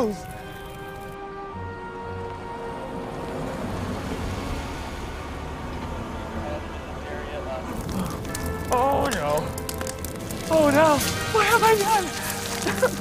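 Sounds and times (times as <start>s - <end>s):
car engine and tyres rumbling: 0.0s - 13.0s
film score music: 0.0s - 13.0s.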